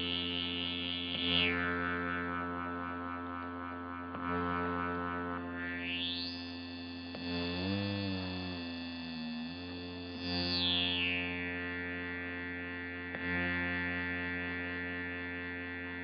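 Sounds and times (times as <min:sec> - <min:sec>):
analog synthesizer drone: 0:00.0 - 0:16.0.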